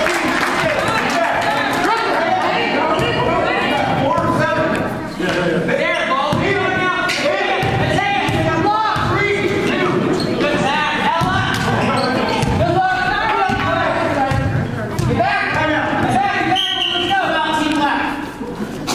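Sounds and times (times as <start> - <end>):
people calling out in gymnasium: 0.6 - 4.9, 5.7 - 18.3
basketball bouncing on court: 11.0 - 16.2.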